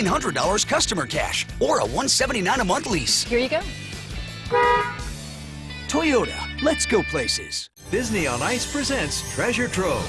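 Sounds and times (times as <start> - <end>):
car horn toot: 4.5 - 5.1.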